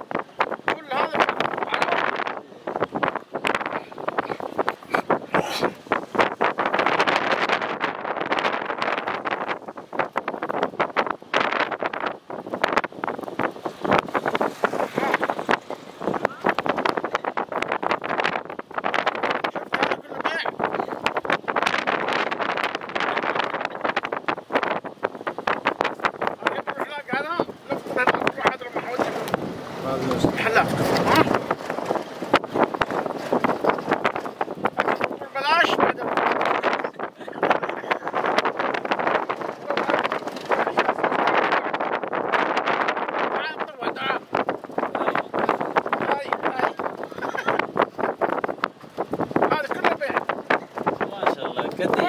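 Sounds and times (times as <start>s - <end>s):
wind buffeting microphone: 0.0s - 52.0s
voices talking in background: 26.2s - 32.0s, 34.7s - 41.9s, 43.2s - 48.4s, 49.4s - 52.0s.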